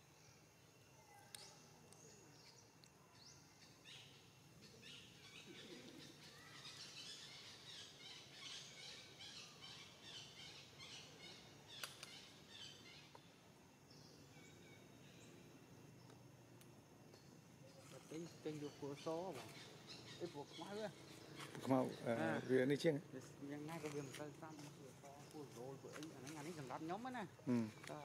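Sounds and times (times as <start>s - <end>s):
small birds chirping: 0.0s - 28.0s.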